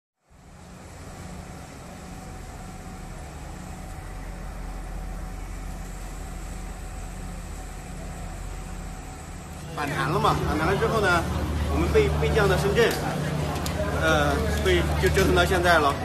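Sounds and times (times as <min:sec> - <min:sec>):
ferry engines droning: 0:00.2 - 0:16.0.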